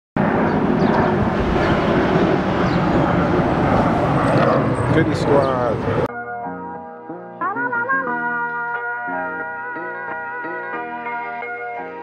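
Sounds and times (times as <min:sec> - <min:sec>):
street noise rumble and hiss: 0:00.2 - 0:06.1.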